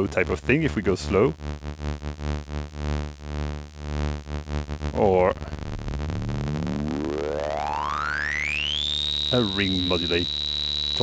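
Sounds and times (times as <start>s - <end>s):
synthesizer tone with tremolo: 1.0s - 11.0s.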